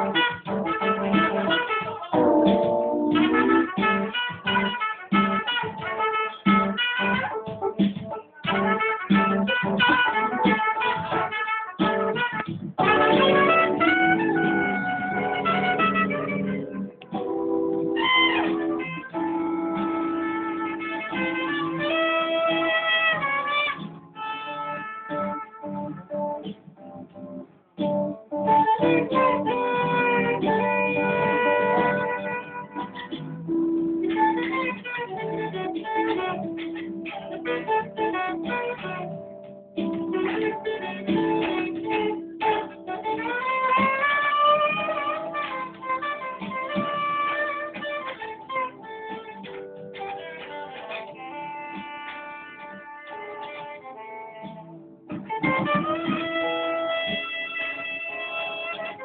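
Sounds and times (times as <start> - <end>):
saxophone melody: 0.0 - 27.0, 27.8 - 59.0
guitar backing: 0.0 - 59.0.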